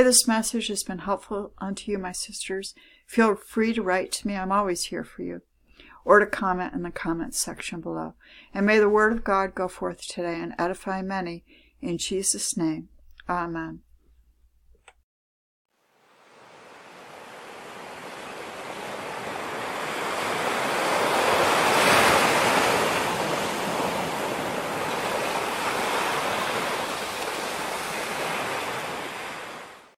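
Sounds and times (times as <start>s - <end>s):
water rushing: 15.8s - 30.0s.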